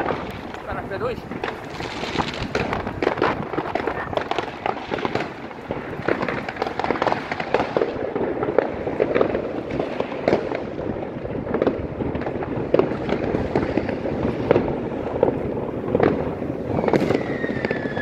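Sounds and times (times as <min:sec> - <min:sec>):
fireworks and firecrackers crackling: 0:00.0 - 0:18.0.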